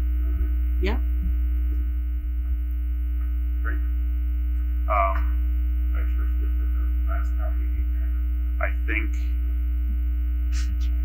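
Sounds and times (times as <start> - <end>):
faint tonal buzz: 0.0 - 11.0
low electrical hum: 0.0 - 11.0
person speaking: 4.9 - 5.3, 10.6 - 11.0.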